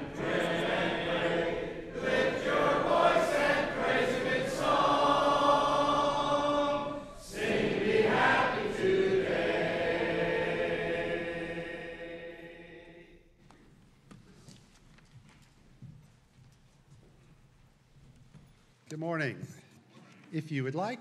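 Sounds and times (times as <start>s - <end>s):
congregation singing a hymn: 0.0s - 13.4s.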